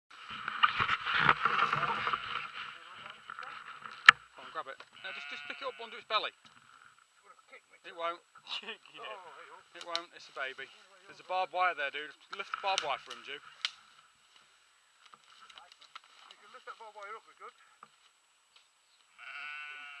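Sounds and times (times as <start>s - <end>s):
indistinct voices: 0.5s - 6.4s
lamb bleating: 5.0s - 6.0s, 19.1s - 20.0s.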